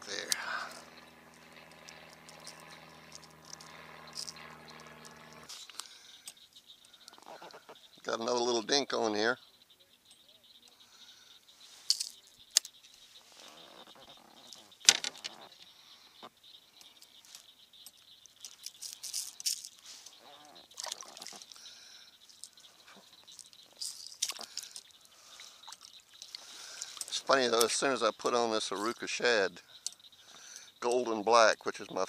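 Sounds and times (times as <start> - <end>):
light water noise: 19.7 - 27.9.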